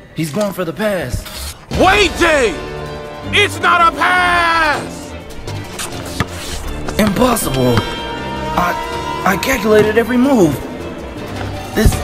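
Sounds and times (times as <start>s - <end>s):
background music with low bass: 1.6s - 12.0s.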